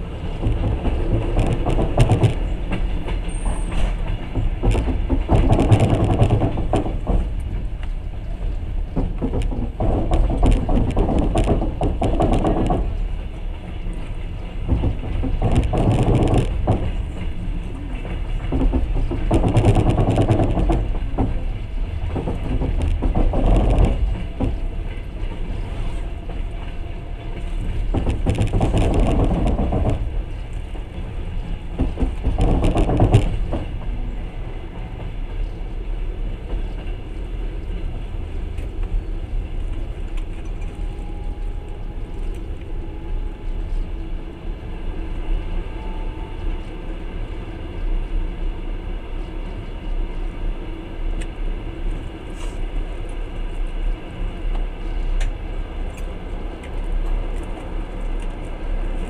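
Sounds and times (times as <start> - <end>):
train wheels rumbling on rails: 0.0 - 59.0.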